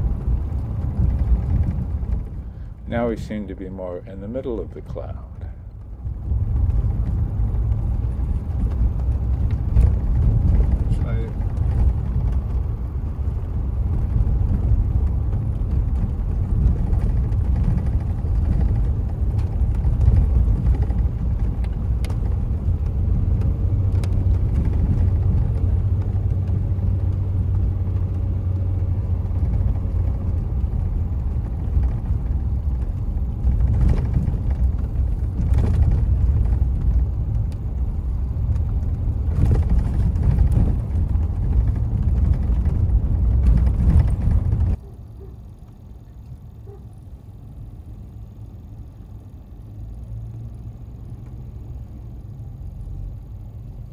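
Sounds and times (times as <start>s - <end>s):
car engine and tyre rumble: 0.0s - 53.9s.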